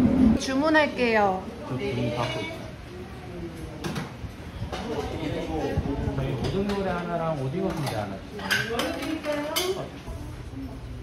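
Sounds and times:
dishes and cutlery clinking: 0:06.4 - 0:10.0.

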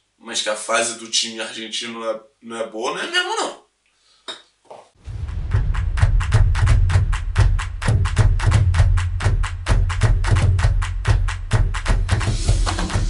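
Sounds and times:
heavy bass line: 0:05.0 - 0:13.0
fast percussion beat: 0:05.1 - 0:13.0.

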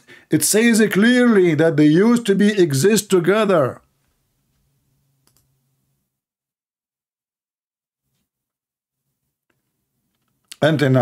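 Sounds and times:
computer mouse clicks: 0:05.2 - 0:05.5.

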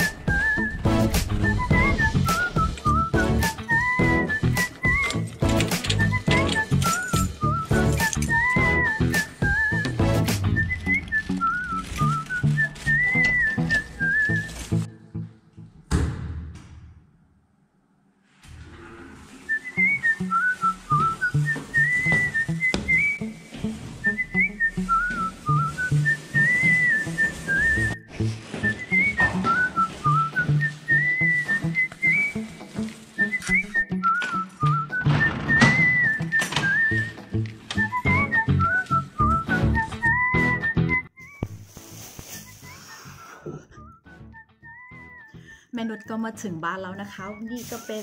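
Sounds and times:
whistled melody: 0:00.0 - 0:15.2, 0:19.4 - 0:48.0.

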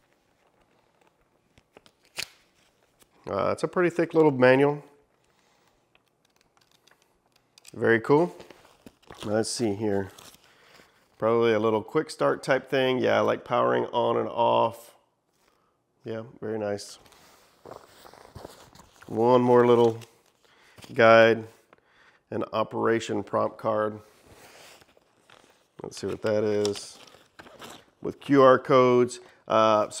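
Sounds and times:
paper pages ticking: 0:05.0 - 0:09.4
rustling in soft case: 0:17.1 - 0:19.2.

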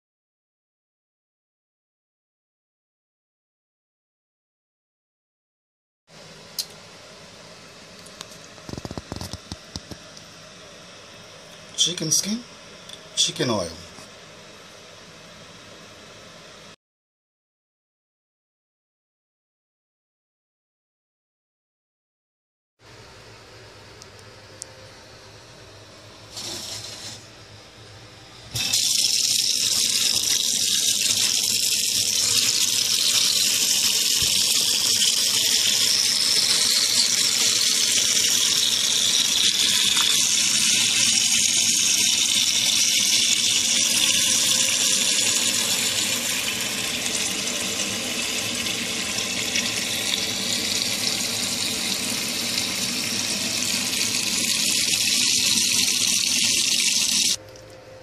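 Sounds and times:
tap water running into steel pot: 0:28.6 - 0:57.4.

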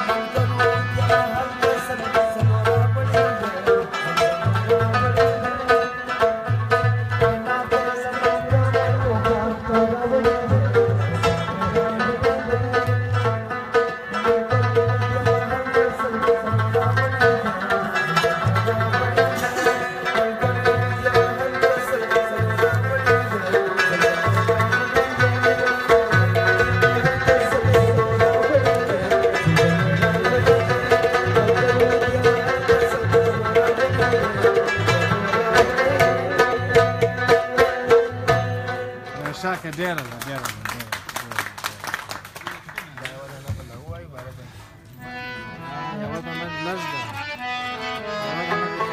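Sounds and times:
plucked rubab: 0:00.0 - 0:40.6, 0:43.4 - 0:48.9
sustained harmonium tones: 0:44.6 - 0:48.9.

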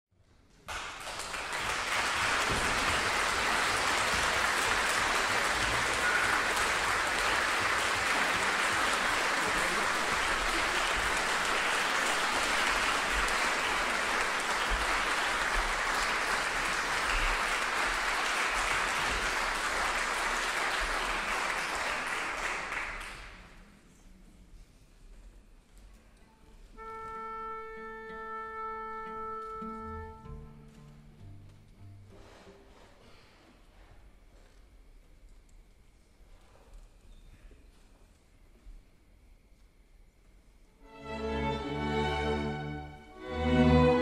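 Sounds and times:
audience applauding: 0:00.6 - 0:23.6.

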